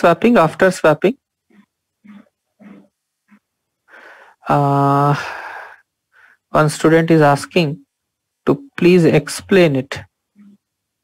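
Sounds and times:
man's voice: 8.4 - 10.1.

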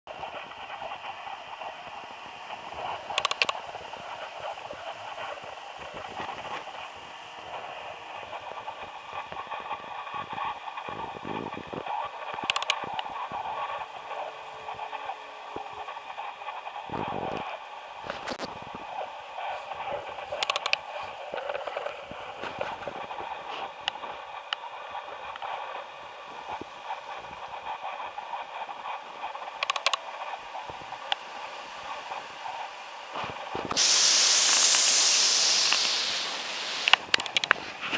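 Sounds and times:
sharp crackles: 33.6 - 37.6.

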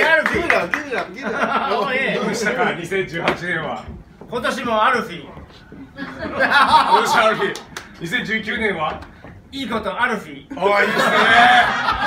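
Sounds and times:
men talking: 0.0 - 12.0
men laughing: 1.0 - 2.5, 5.8 - 7.7, 10.6 - 12.0.

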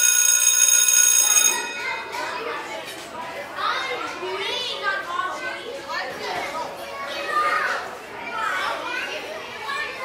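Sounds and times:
school bell ringing: 0.0 - 2.7
children chattering and shouting: 0.0 - 10.0.

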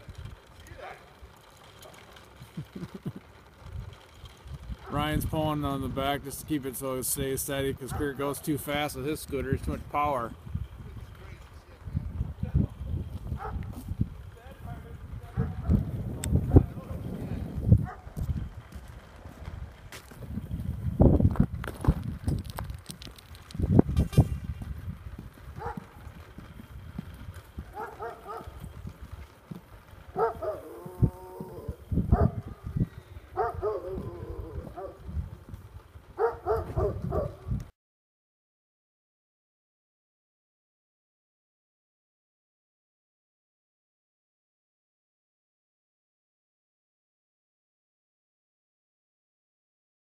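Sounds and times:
wind rumble on microphone: 0.0 - 0.6, 2.5 - 37.7
person calling or laughing: 2.4 - 3.4.

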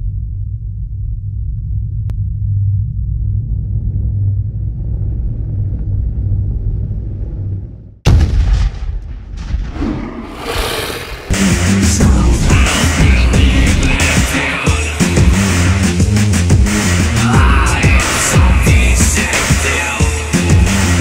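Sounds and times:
low rumble: 0.0 - 19.4
loud boom: 8.0 - 14.2.

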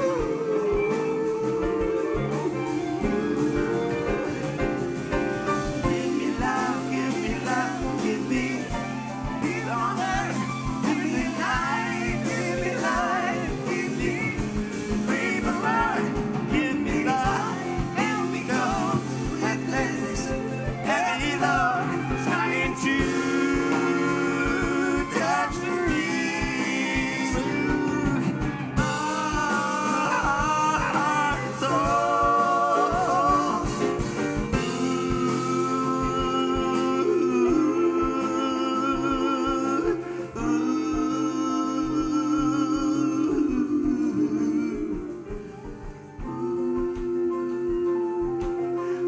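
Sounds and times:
backing vocalists singing: 0.0 - 49.0
lead singer with vibrato: 0.0 - 49.0
live band playing: 0.0 - 49.0.

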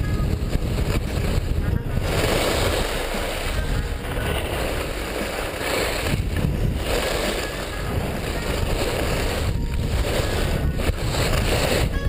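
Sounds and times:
skis sliding on packed snow: 0.0 - 12.0
wind rushing over microphone: 0.0 - 12.0.

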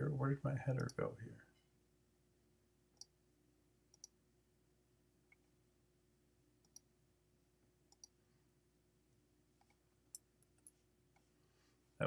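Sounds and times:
faint steady hum: 0.0 - 12.0
computer mouse clicks: 3.9 - 4.2, 6.6 - 6.9, 7.9 - 8.2.

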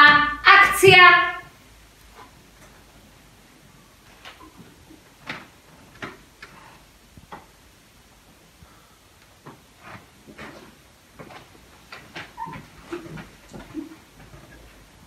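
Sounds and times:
people rustling: 0.0 - 15.0.

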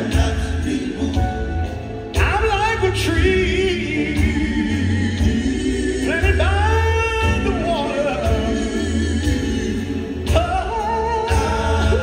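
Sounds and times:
men singing: 0.0 - 12.0.

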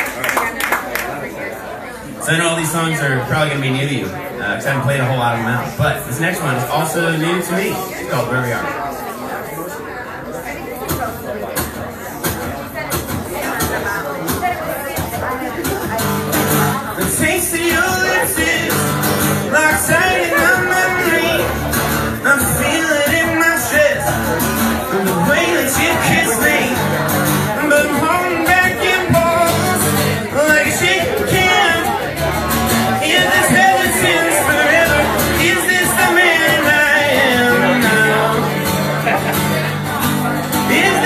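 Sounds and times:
strummed acoustic guitar: 10.8 - 41.0
man singing: 16.9 - 41.0.

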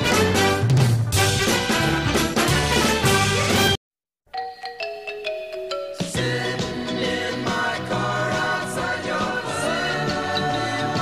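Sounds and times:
full band music: 0.0 - 3.8
ringing bell-like notes: 4.3 - 6.5.

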